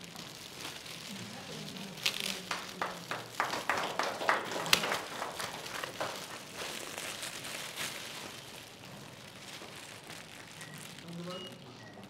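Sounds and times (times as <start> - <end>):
foil gift wrap crinkling: 0.0 - 12.0.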